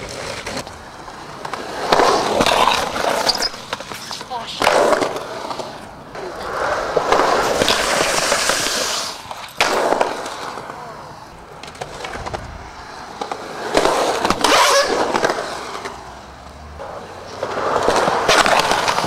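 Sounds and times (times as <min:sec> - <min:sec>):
skateboard wheels rolling on concrete: 0:00.0 - 0:19.0
sharp skateboard knocks: 0:07.0 - 0:10.7.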